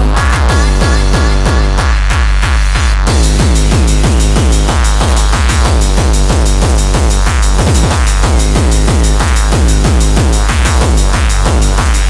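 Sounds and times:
dense electronic sound: 0.0 - 12.0
heavy kick drum pounding: 0.0 - 12.0.

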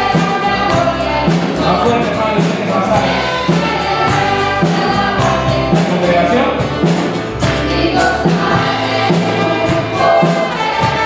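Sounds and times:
acoustic guitar: 0.0 - 11.0
electric bass: 0.0 - 11.0
voices singing together: 0.0 - 11.0.

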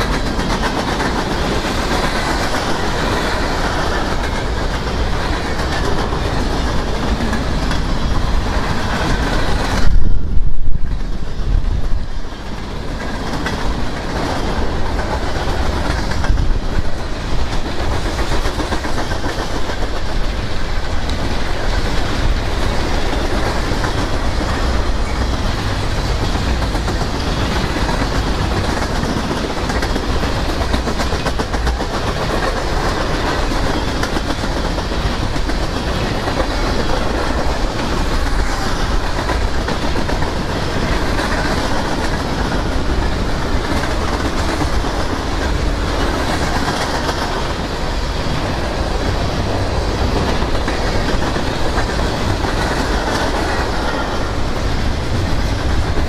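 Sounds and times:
freight train rolling past: 0.0 - 56.0.

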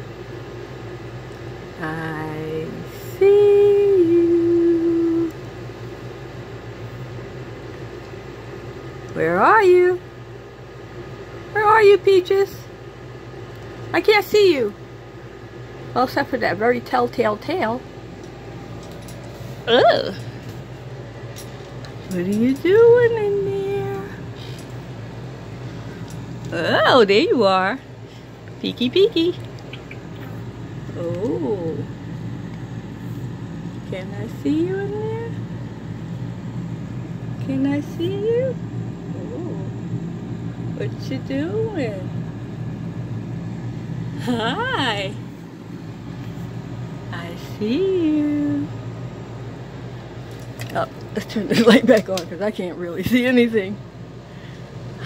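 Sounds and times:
steady low hum: 0.0 - 55.0
woman singing a long note: 1.8 - 5.4.

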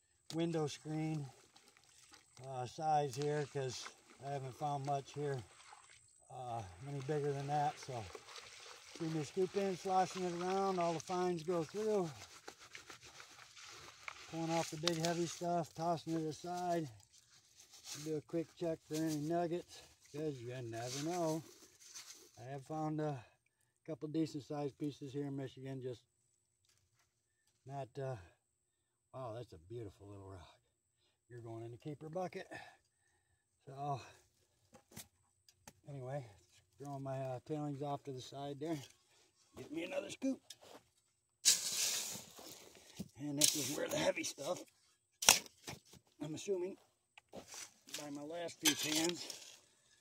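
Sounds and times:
gritty scraping of wet sand: 6.6 - 22.4, 39.6 - 49.8.

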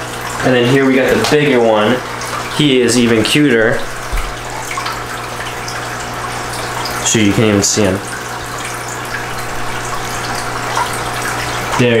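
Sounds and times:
low steady hum: 0.0 - 12.0
running water splashing: 0.0 - 12.0.

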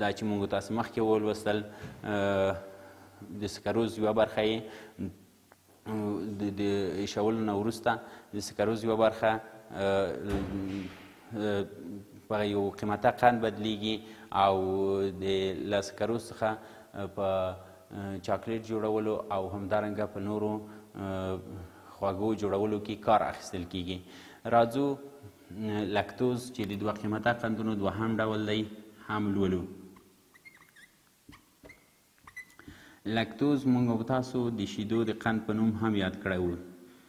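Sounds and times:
man lecturing: 0.0 - 5.2, 5.8 - 29.8, 33.0 - 36.7
marker squeaking on whiteboard: 29.9 - 32.7.

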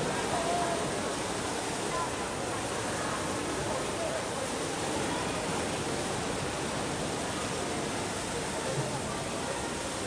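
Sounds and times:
waterfall splashing into pool: 0.0 - 10.0.

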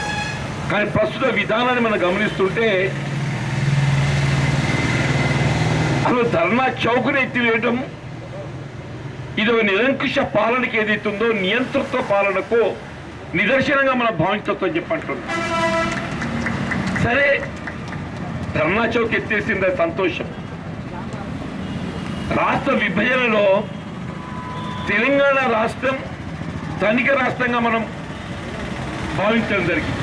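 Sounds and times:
vehicle horn: 0.0 - 0.6, 15.3 - 16.2, 23.7 - 25.0.

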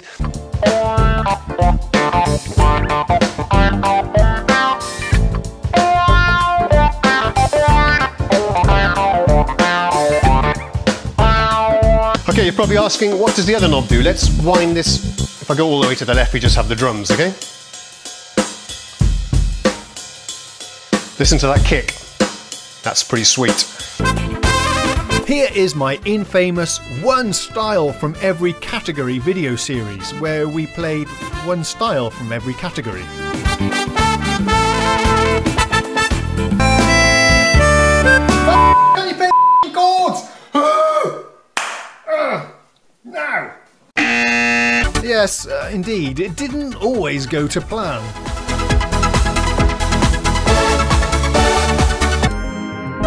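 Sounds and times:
man's vocal exclamations: 40.5 - 41.4, 42.0 - 43.7
loud buzzer tone: 44.0 - 45.0.

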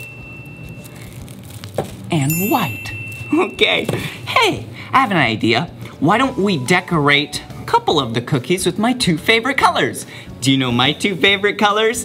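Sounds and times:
plastic bags crinkling: 0.0 - 4.2
high ringing chime: 0.0 - 4.7.

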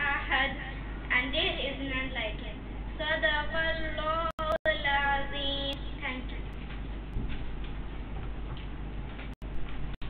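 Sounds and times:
microphone hiss and hum: 0.0 - 10.0.

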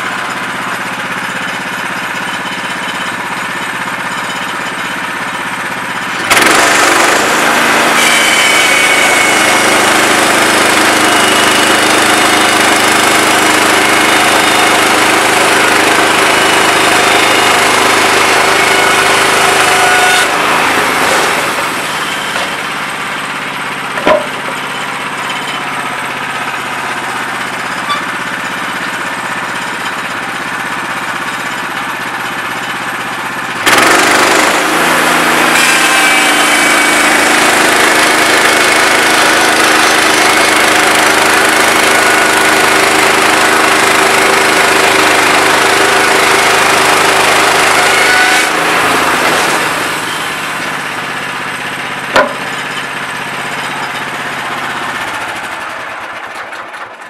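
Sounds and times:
saw blade whine: 0.0 - 56.7
gas engine idling and revving: 5.5 - 57.0.

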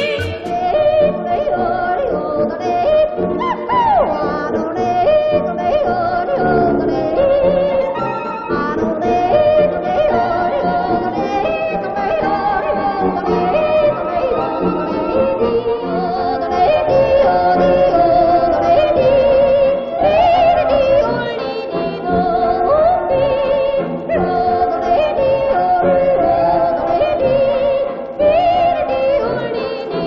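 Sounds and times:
yodeling song on old record: 0.0 - 30.0.

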